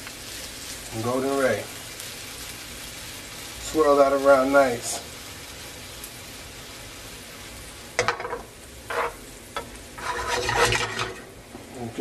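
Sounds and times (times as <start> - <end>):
vegetables sizzling in a skillet: 0.0 - 12.0
spoon scraping a pan: 8.0 - 11.3.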